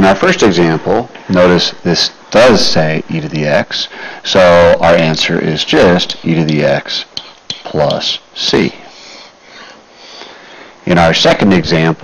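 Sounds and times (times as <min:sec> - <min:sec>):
man speaking: 0:00.0 - 0:09.3, 0:10.8 - 0:12.0
breath noise on microphone: 0:03.9 - 0:04.3, 0:08.8 - 0:10.8.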